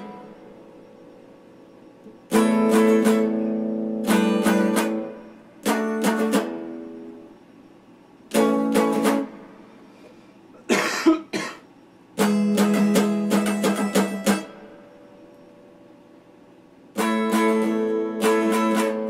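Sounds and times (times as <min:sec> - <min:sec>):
electric guitar chords strummed: 0:00.0 - 0:01.0, 0:02.0 - 0:07.3, 0:08.3 - 0:09.6, 0:12.2 - 0:15.8, 0:16.9 - 0:19.0.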